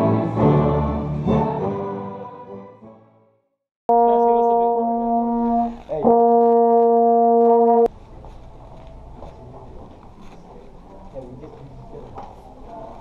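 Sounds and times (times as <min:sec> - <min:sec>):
trombones holding loud note: 0:03.9 - 0:07.9.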